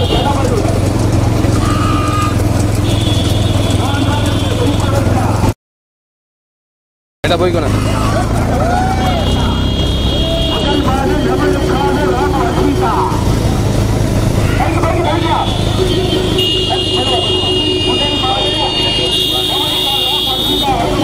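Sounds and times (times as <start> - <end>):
people shouting: 0.0 - 4.9, 7.6 - 13.7, 14.3 - 21.0
motorcycle engines running: 0.0 - 5.6, 7.2 - 21.0.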